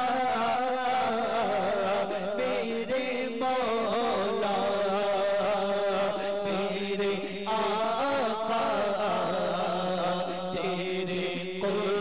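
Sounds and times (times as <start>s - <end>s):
man singing devotional melody: 0.0s - 12.0s.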